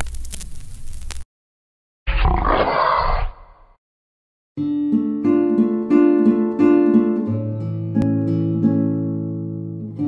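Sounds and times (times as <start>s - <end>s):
animal roar: 2.1s - 3.7s.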